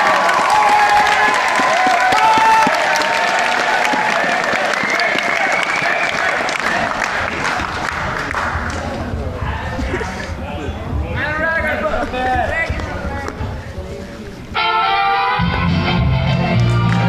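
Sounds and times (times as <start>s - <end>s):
high-pitched cheers and shouts: 0.0s - 7.8s
audience clapping: 0.0s - 9.3s, 16.3s - 17.0s.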